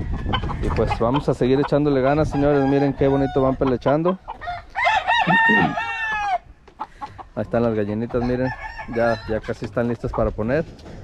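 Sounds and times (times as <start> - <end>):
rooster crowing: 2.3 - 3.6, 4.4 - 6.5, 8.2 - 9.4.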